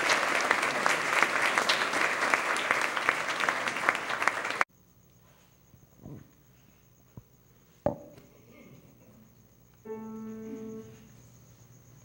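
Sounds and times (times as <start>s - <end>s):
soft knock: 7.9s - 8.2s.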